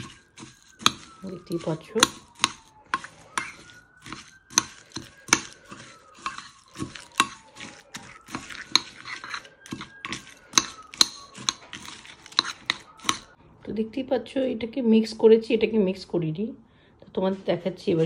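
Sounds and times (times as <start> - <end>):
metal spoon clinking in ceramic bowl: 0.0 - 13.3.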